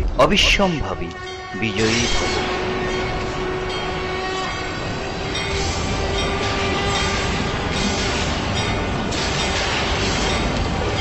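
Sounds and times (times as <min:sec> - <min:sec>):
conch shell blown: 0:00.8 - 0:05.1.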